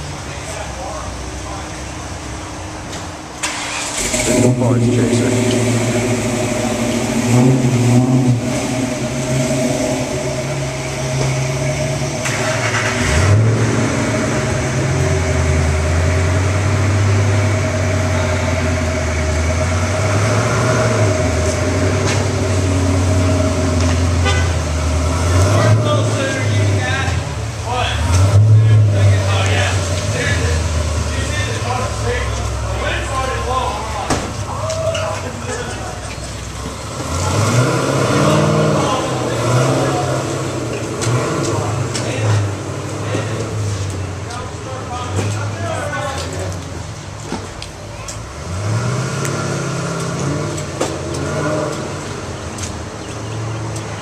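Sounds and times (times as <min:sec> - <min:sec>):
people talking: 0:00.0 - 0:02.2, 0:04.2 - 0:06.8, 0:17.5 - 0:19.3, 0:25.3 - 0:36.4, 0:37.2 - 0:48.3
car engines rumbling: 0:00.0 - 0:54.0.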